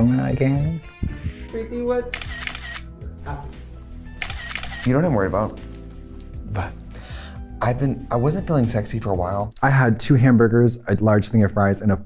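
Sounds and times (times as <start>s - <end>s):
background music: 0.0s - 12.0s
camera shutter clicks: 2.1s - 2.9s, 4.2s - 5.0s.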